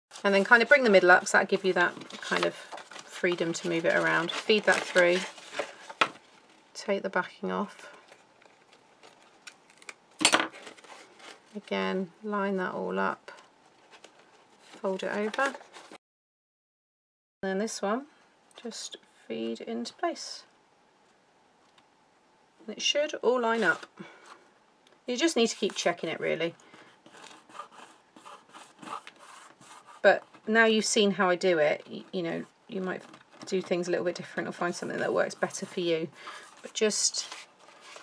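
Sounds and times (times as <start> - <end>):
hands rubbing paper card: 27.0 - 30.5.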